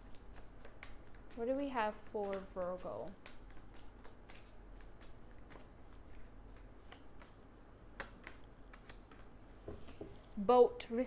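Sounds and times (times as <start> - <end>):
cards shuffled by hand: 0.0 - 10.4.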